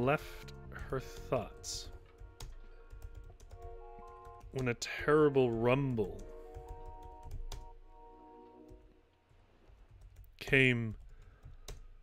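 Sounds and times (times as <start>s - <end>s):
soft background music: 0.0s - 10.7s
keyboard keys clicking: 0.8s - 7.7s.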